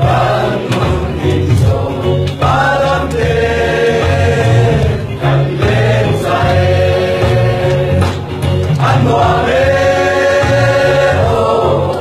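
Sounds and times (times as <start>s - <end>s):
group of young people singing: 0.0s - 12.0s.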